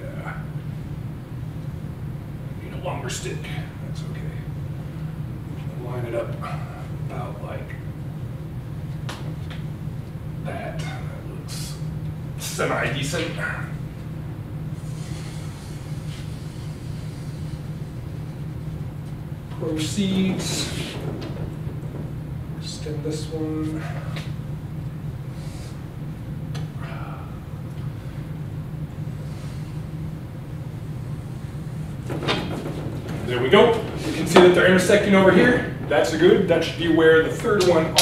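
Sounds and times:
low room hum: 0.0s - 38.0s.

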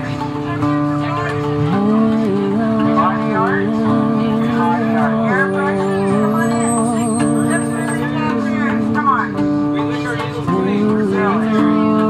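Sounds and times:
plucked electric zither notes: 0.0s - 12.0s
woman singing wordless vocal: 1.6s - 9.0s, 10.5s - 12.0s.

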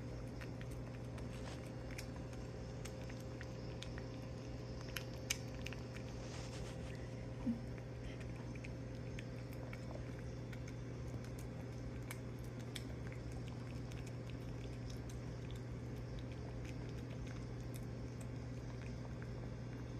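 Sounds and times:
cat licking and chewing: 0.0s - 19.9s
steady low hum: 0.0s - 19.9s.

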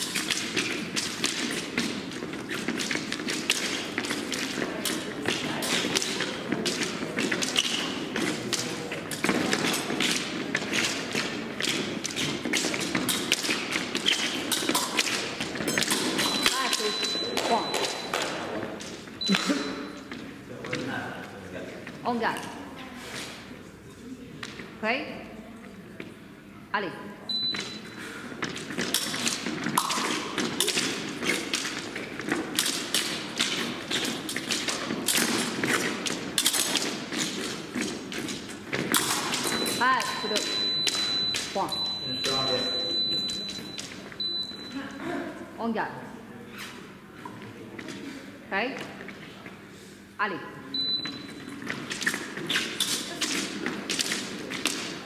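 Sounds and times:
footwork thumps and stamps: 0.0s - 19.0s, 28.4s - 41.9s
high electronic beep: 39.5s - 44.8s, 50.8s - 51.4s.

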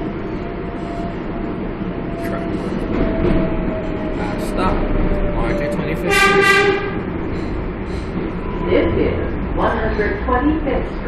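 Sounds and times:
train rumbling on rails: 0.0s - 11.0s
train horn toot: 5.5s - 7.1s.

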